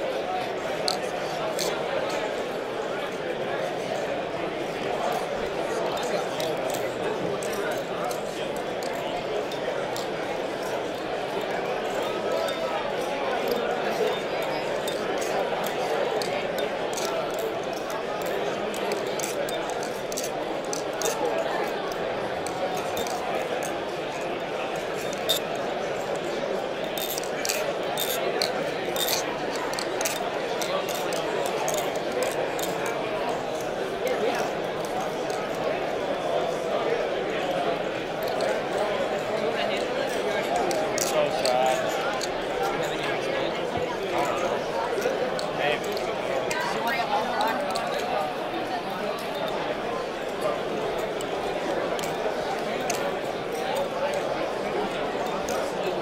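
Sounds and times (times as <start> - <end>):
crowd chatter in hall: 0.0 - 56.0.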